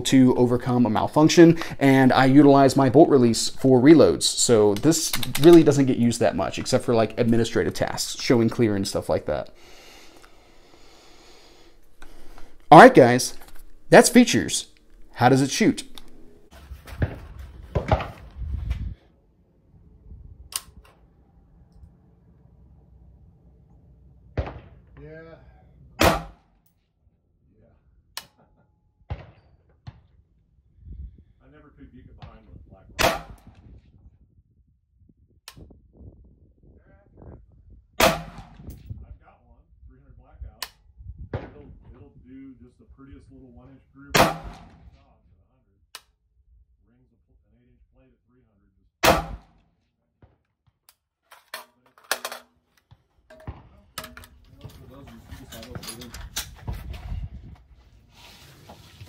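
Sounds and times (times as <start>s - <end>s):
sharp clicks and knocks: 4.7s - 5.7s
rifle shot: 24.4s - 24.9s, 26.0s - 26.4s, 33.0s - 33.6s, 38.0s - 38.7s, 44.2s - 44.9s, 49.0s - 49.6s.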